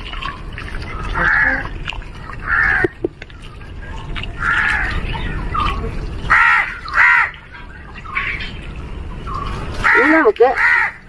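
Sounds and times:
crows cawing: 1.2 - 1.7, 2.4 - 3.0, 4.4 - 5.1, 6.3 - 7.5, 9.8 - 11.0.

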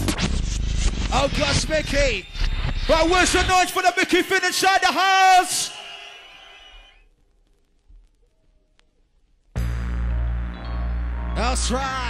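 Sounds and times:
sound system echo tail: 9.6 - 12.0.

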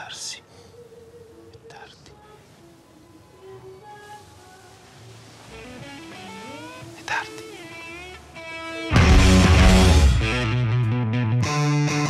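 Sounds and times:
person whispering: 0.0 - 0.5, 1.6 - 2.2, 7.0 - 7.6.

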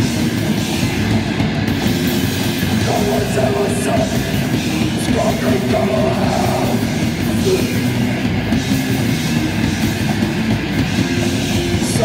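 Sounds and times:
bass guitar: 0.0 - 12.0
distorted electric guitar: 0.0 - 12.0
fast drumming: 0.0 - 12.0.

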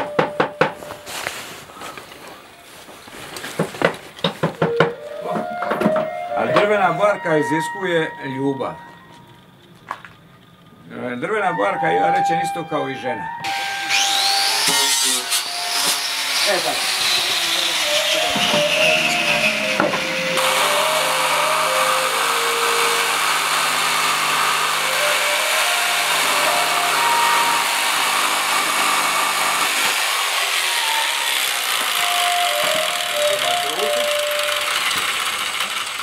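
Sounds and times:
simple melody: 0.0 - 1.3, 4.4 - 35.4
electric jigsaw cutting wood: 13.5 - 36.0.

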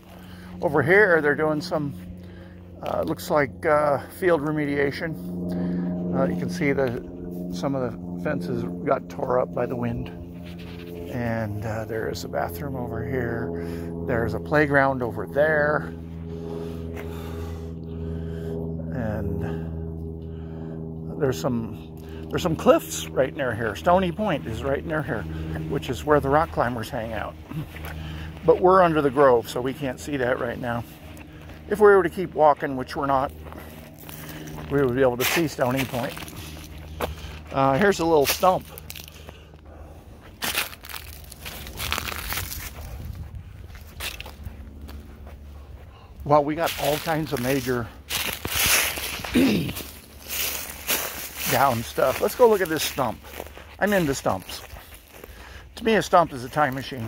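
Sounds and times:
footsteps crunching on mulch and leaves: 0.0 - 57.0
low mechanical hum: 0.0 - 57.0.

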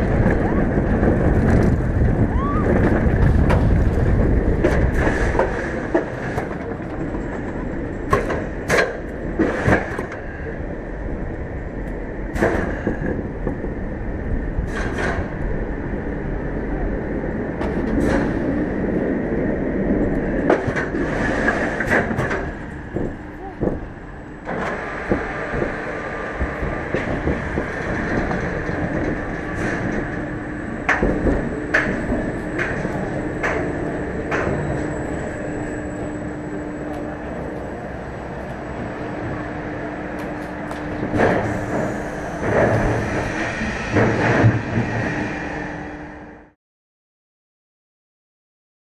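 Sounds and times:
faint constant hum: 0.0 - 43.0
roller coaster wheels rumbling on rail: 0.0 - 46.6
knocks and rattles: 20.4 - 34.8.

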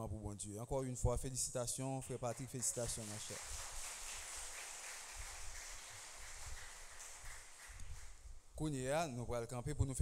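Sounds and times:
faint steady hiss: 0.1 - 10.0.

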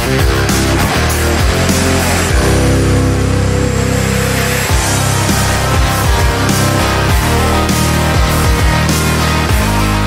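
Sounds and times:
heavy distorted music chord: 0.0 - 10.0.

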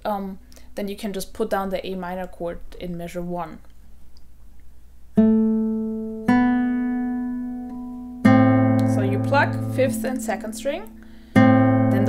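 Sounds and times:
classical guitar plucked notes: 5.1 - 12.0.

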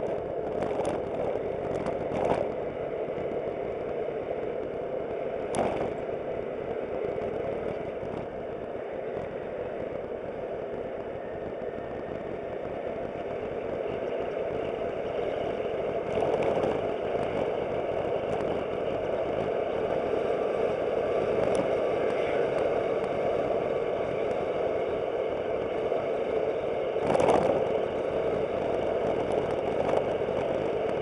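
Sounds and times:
road and wind noise: 0.0 - 31.0.

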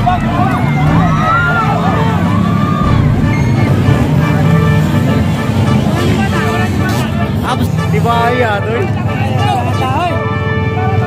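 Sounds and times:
crowd voices: 0.0 - 11.0
dirt bike engines running: 0.0 - 11.0.

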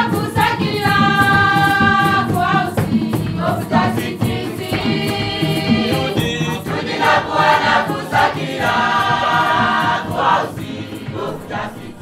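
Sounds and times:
accompaniment with steady beat: 0.0 - 12.0
choir singing: 0.0 - 12.0.

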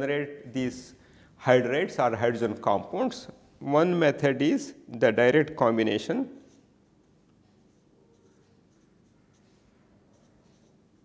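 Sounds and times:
low room hum: 0.0 - 11.0
marker scratching on paper: 6.4 - 11.0.

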